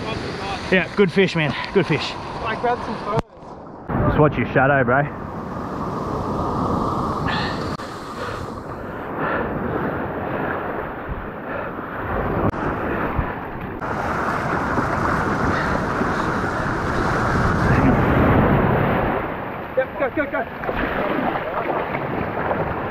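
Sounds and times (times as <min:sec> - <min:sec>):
wind buffeting microphone: 0:01.4 - 0:22.9
surf breaking on sand: 0:12.0 - 0:22.9.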